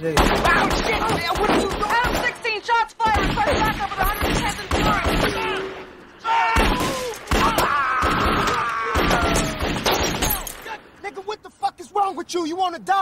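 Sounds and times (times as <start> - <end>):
men screaming: 6.2 - 9.8
glass shattering: 10.0 - 10.7.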